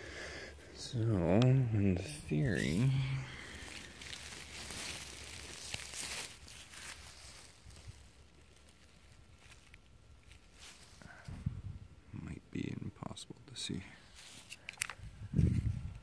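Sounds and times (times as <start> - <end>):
handling noise in grass: 0.9 - 11.4, 14.0 - 16.0.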